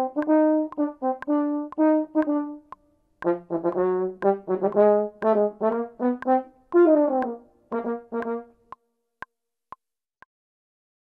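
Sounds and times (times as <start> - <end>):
metronome clicks: 0.0 - 8.8.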